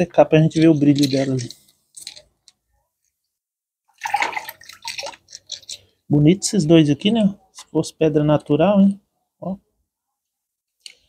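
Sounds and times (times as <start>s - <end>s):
water splashing and sloshing: 3.9s - 6.0s.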